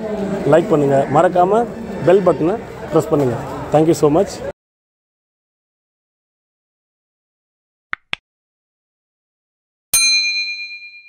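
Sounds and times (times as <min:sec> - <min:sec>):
notification bell ding: 0:10.0 - 0:11.0.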